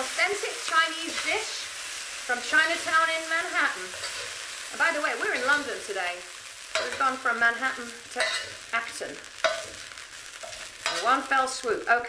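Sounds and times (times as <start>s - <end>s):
spatula scraping a wok: 0.0s - 11.4s
chicken sizzling in a wok: 0.0s - 12.0s.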